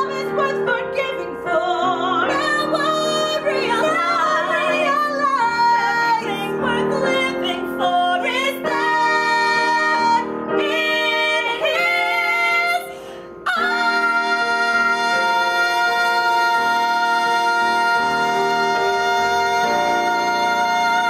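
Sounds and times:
women singing a duet: 0:00.0 - 0:21.0.

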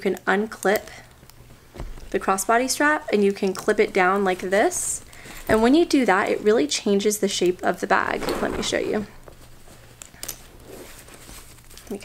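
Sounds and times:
bag rustling: 0:01.4 - 0:12.0.

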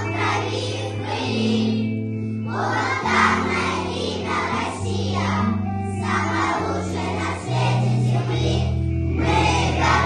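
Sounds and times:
children's choir singing: 0:00.0 - 0:10.0
instrumental accompaniment: 0:00.0 - 0:10.0.

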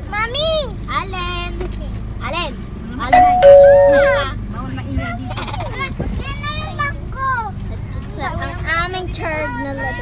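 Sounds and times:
two-note doorbell chime: 0:03.2 - 0:04.3.

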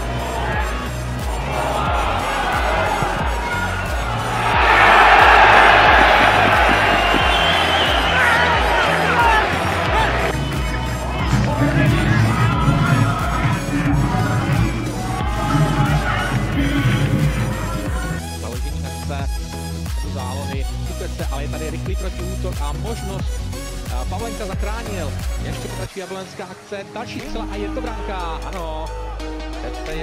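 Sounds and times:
stadium crowd cheering: 0:00.0 - 0:18.1
background music with steady beat: 0:00.0 - 0:30.0.

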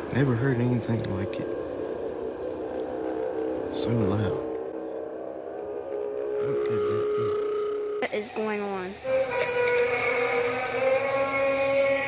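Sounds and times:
trumpet-like drone: 0:00.0 - 0:12.0.

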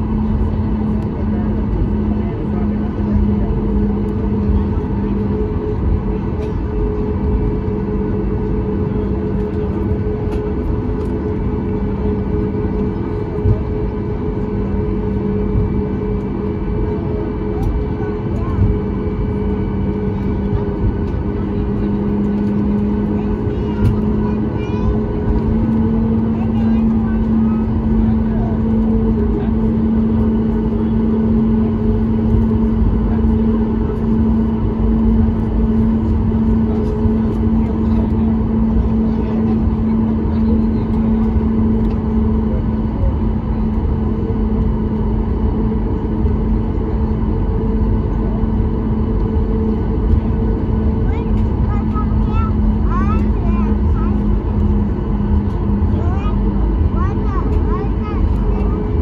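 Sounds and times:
airplane cabin engine drone: 0:00.0 - 0:59.0.

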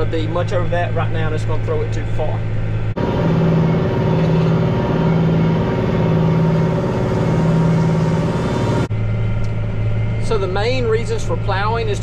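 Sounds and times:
tractor engine running: 0:00.2 - 0:12.0
rush of plowed ground: 0:03.0 - 0:08.9.

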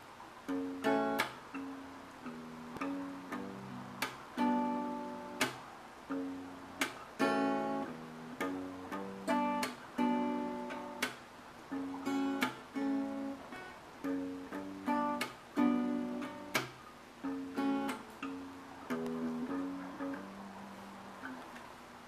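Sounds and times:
acoustic guitar strumming and picking: 0:00.0 - 0:21.7.

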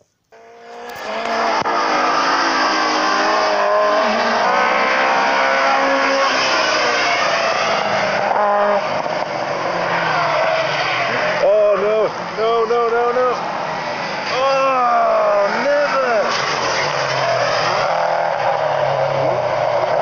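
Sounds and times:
car engines at high revs: 0:00.3 - 0:20.0
voices: 0:09.9 - 0:13.6, 0:14.2 - 0:17.0.

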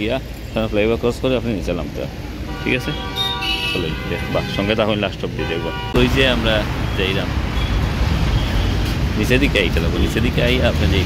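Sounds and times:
man talking: 0:00.0 - 0:03.1, 0:03.7 - 0:07.4, 0:09.1 - 0:11.0
road traffic passing: 0:00.0 - 0:11.0.

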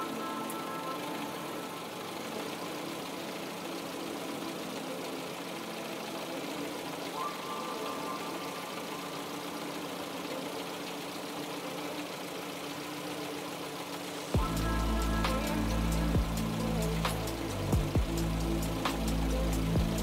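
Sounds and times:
car engine idling: 0:00.0 - 0:20.0
steady tones: 0:00.0 - 0:20.0.

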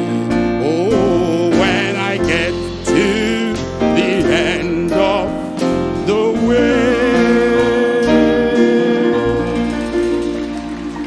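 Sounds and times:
man singing a hymn: 0:00.0 - 0:10.7
instrumental accompaniment: 0:00.0 - 0:11.0.

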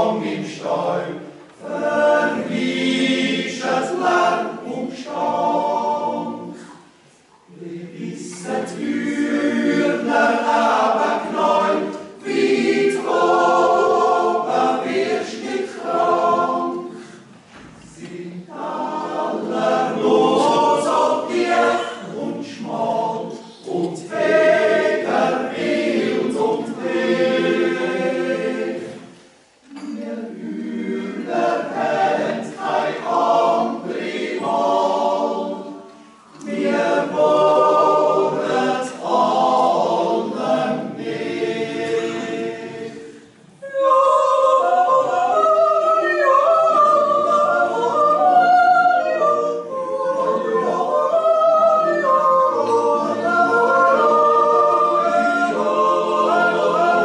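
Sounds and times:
choir singing a cappella: 0:00.0 - 0:57.0.

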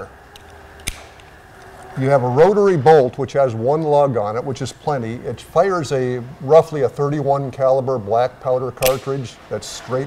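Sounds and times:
sharp pistol action click: 0:00.3 - 0:01.4, 0:08.8 - 0:09.1.

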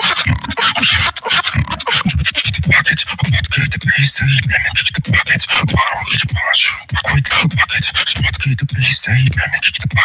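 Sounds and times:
person beatboxing: 0:00.0 - 0:10.0.

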